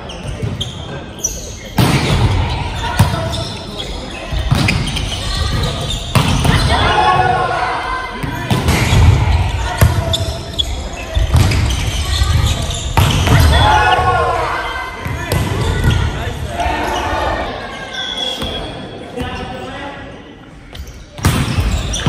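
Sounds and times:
volleyball hits echoing: 4.4 - 10.2, 12.9 - 16.2
players shouting: 5.0 - 10.4, 11.9 - 18.3.

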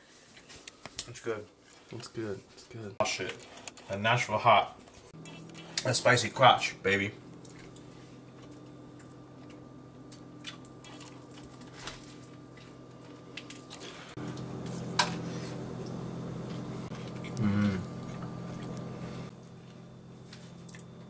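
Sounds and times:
steady low hum: 0.0 - 21.0
wet chewing and mouth clicks: 7.4 - 12.8
man's short low vocal sound: 17.4 - 17.9.

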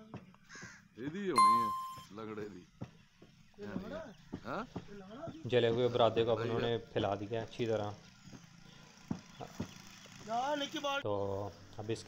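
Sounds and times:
crows cawing: 0.5 - 0.9
bright bell ding: 1.4 - 2.1.

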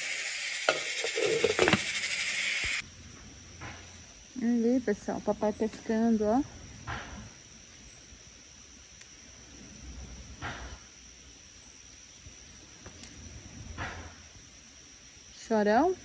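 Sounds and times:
high-pitched insect drone: 0.0 - 3.0.

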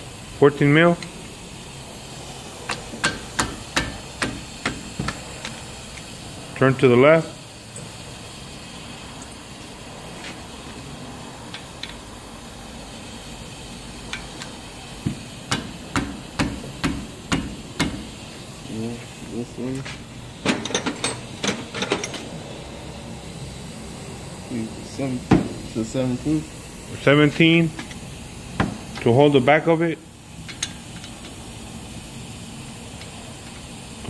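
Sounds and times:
metal tools clicking on bolts: 20.5 - 22.3, 30.4 - 31.4.

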